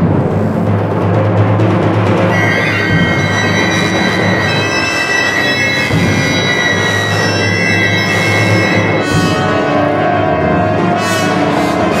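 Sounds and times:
orchestra playing sustained tones: 0:02.3 - 0:12.0.

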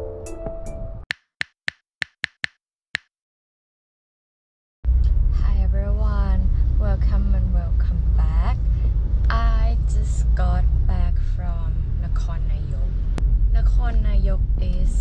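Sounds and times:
car engine and road noise: 0:04.9 - 0:15.0
woman talking: 0:05.3 - 0:15.0.

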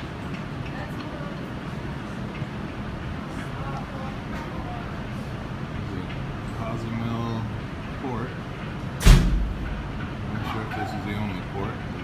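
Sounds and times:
steady low hum: 0:00.0 - 0:12.0
sudden thump with low rumble: 0:09.0 - 0:10.0.

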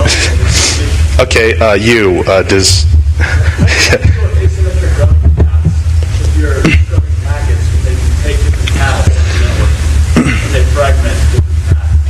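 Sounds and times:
low electrical hum and hiss: 0:00.0 - 0:12.0.

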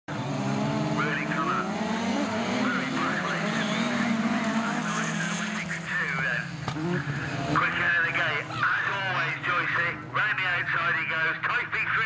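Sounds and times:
racing car engines revving: 0:00.1 - 0:12.0.

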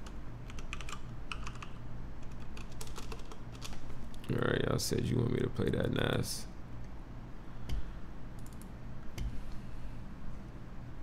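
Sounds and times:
laptop keyboard typing: 0:00.0 - 0:03.9, 0:08.4 - 0:09.3.

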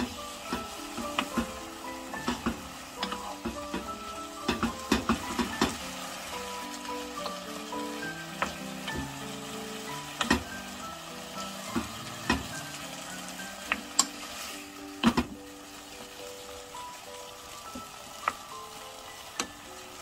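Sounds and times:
food sizzling in a frying pan: 0:00.0 - 0:20.0
soft background music: 0:00.0 - 0:20.0.

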